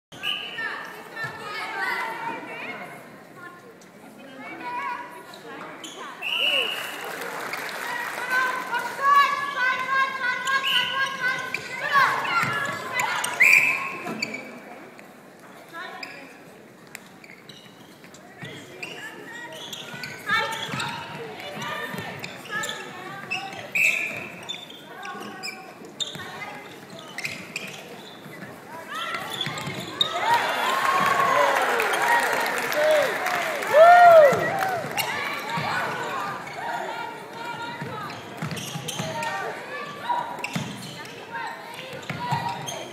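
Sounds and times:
players shouting calls: 0:28.9 - 0:38.2.

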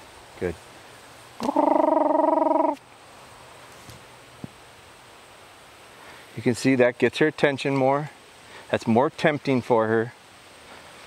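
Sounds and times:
loud buzzy call: 0:01.4 - 0:02.8.

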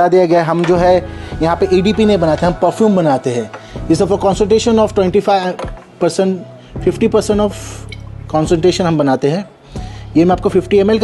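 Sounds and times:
person talking: 0:00.0 - 0:07.7.

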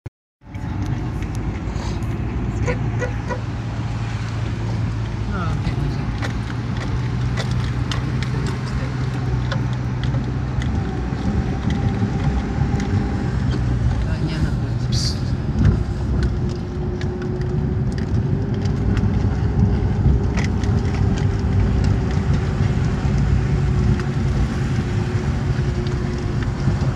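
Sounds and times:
car engine running: 0:00.4 - 0:26.9
tyres rolling on concrete: 0:00.4 - 0:26.9
small clicks and knocks: 0:04.2 - 0:14.1, 0:15.5 - 0:26.9.

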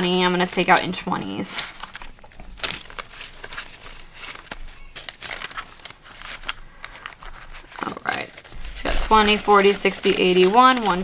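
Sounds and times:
banknotes counted by hand: 0:00.3 - 0:11.0.

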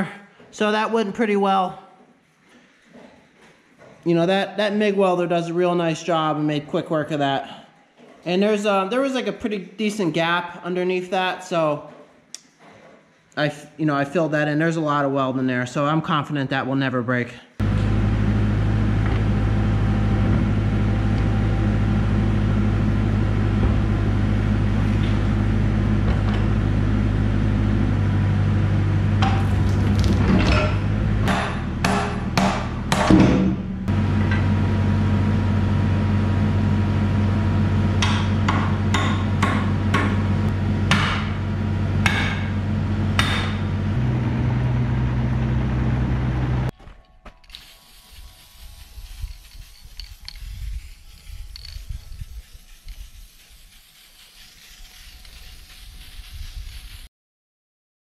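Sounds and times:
sharp metal knocks: 0:30.4 - 0:34.4, 0:38.0 - 0:40.2, 0:40.9 - 0:41.4, 0:42.0 - 0:42.6, 0:43.2 - 0:43.7.

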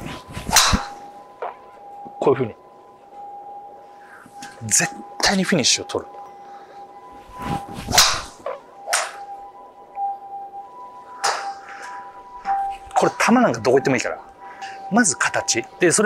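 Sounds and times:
golf club striking ball: 0:00.5 - 0:01.6, 0:07.9 - 0:09.2, 0:11.2 - 0:11.6.

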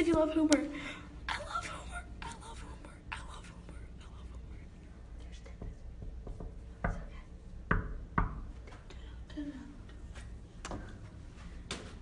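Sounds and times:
whispering voices: 0:01.3 - 0:06.0
knock on a door: 0:05.6 - 0:07.1, 0:07.7 - 0:08.5.

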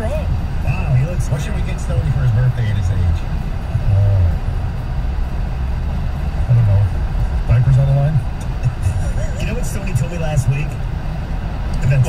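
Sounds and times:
road rumble: 0:00.0 - 0:12.0
man talking over car radio: 0:00.1 - 0:04.5, 0:06.4 - 0:10.8, 0:11.7 - 0:12.0.

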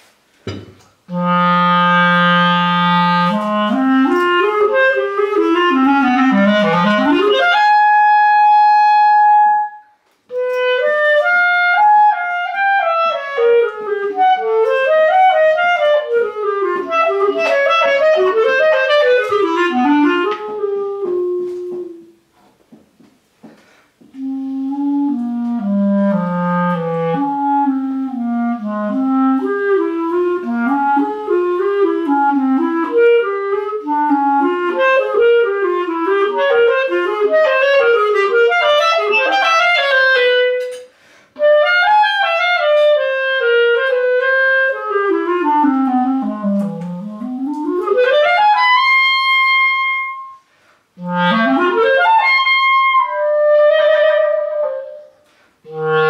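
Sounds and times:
clarinet melody: 0:01.0 - 0:22.4, 0:24.0 - 0:56.0.

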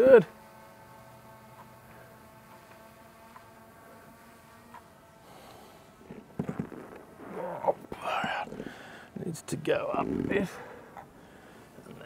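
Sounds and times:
drone propellers humming: 0:00.0 - 0:12.0
man murmuring: 0:07.3 - 0:10.8.

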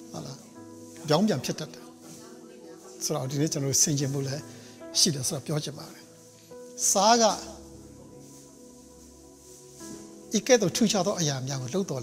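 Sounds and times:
soft background music: 0:00.0 - 0:12.0
man speaking: 0:01.0 - 0:01.9, 0:03.0 - 0:06.1, 0:06.8 - 0:07.7, 0:10.3 - 0:12.0.

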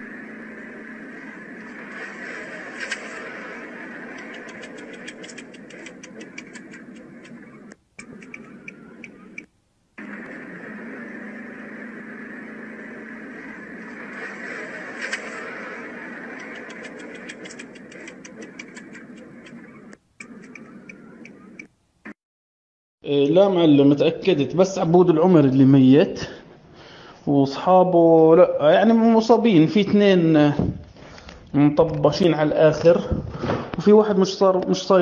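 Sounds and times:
car road and wind noise: 0:00.0 - 0:21.8
quickening clicks: 0:04.0 - 0:09.5, 0:16.2 - 0:21.8.

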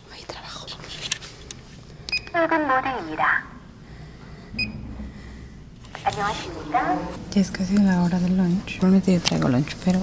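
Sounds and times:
faint room noise: 0:00.0 - 0:10.0.

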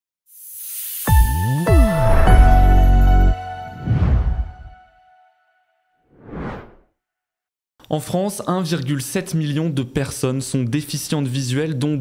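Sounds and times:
whoosh sound effect: 0:03.7 - 0:04.8, 0:06.1 - 0:06.8.

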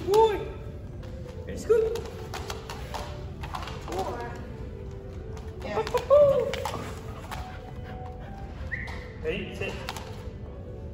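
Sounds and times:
footsteps tapping: 0:00.0 - 0:09.2
dog's claws on rubber floor: 0:01.0 - 0:08.2.

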